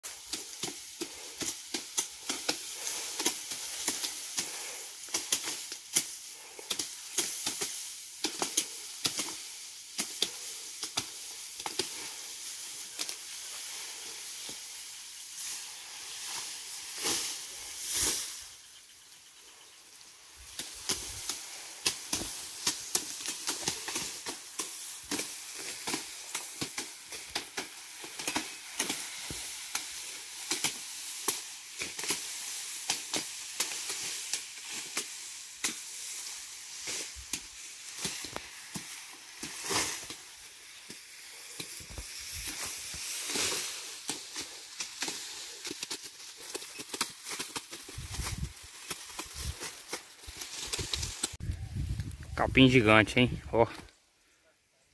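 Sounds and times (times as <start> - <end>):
leaves rustling: 0.0 - 54.0
grass stalks snapping and chopping: 0.1 - 18.3, 20.4 - 52.2.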